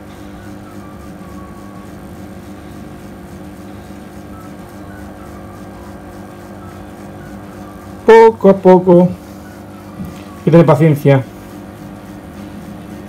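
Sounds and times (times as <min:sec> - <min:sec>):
protein skimmer humming: 0:00.0 - 0:13.0.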